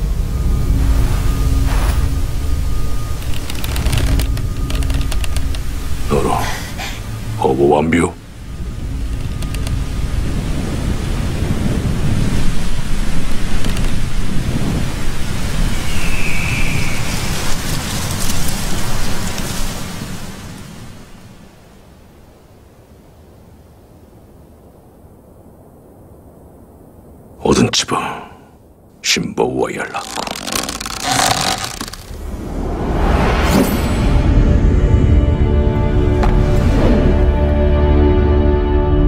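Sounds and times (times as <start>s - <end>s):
wind rushing through grass: 8.2s - 27.4s.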